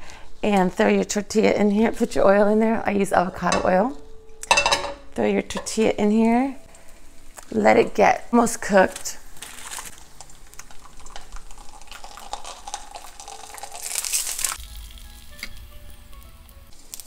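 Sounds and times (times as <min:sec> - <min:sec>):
faint background music: 0:00.3 - 0:09.2, 0:12.9 - 0:17.0
tortilla sizzling in oil: 0:08.8 - 0:17.0.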